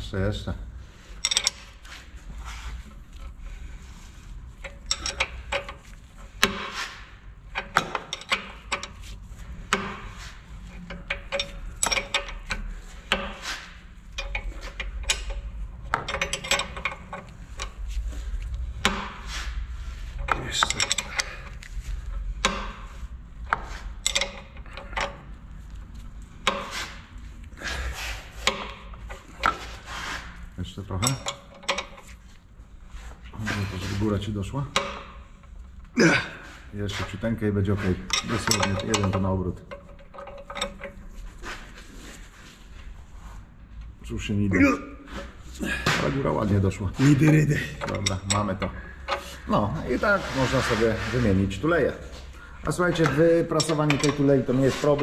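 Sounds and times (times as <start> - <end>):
spanner clicking and scraping on nut: 1.0 - 35.9, 36.8 - 42.8, 45.1 - 55.0.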